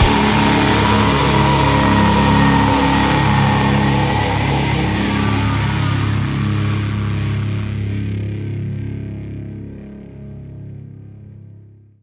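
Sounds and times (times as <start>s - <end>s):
distorted electric guitar chord: 0.0s - 9.4s
bass guitar: 0.0s - 11.6s.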